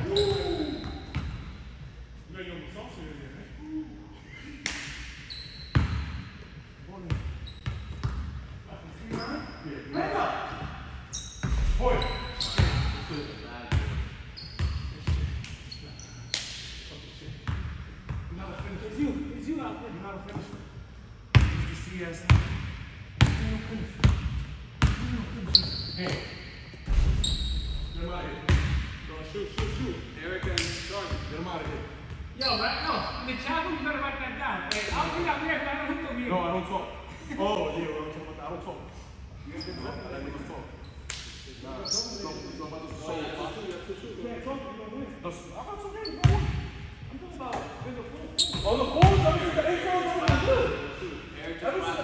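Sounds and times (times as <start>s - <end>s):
players' voices: 11.4s - 14.0s, 26.9s - 40.6s, 41.5s - 52.0s.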